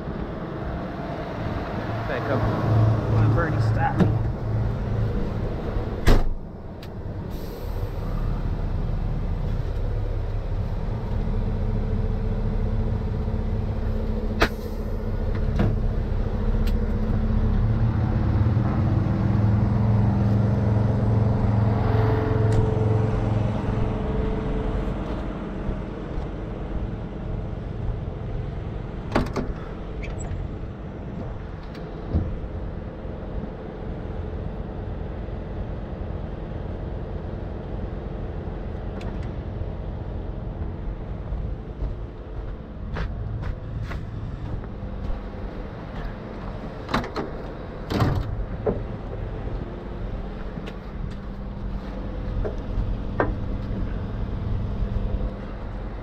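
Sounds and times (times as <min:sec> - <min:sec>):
diesel engine idling: 0:00.0 - 0:56.0.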